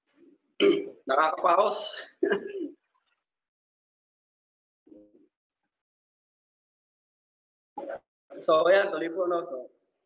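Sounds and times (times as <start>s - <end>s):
man coughing: 0.6s - 1.0s, 2.0s - 2.8s.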